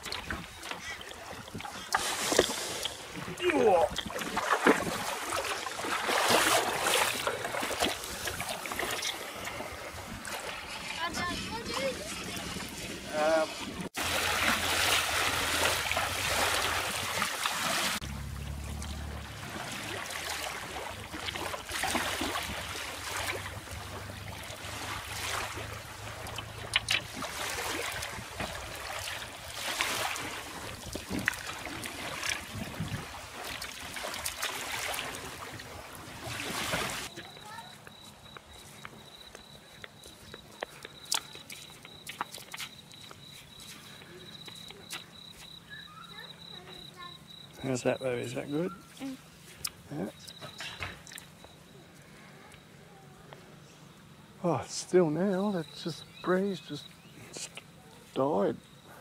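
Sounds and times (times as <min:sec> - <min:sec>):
water sloshing and splashing: 0:00.0 - 0:51.7
insects trilling: 0:37.1 - 0:52.8, 0:53.9 - 0:59.0.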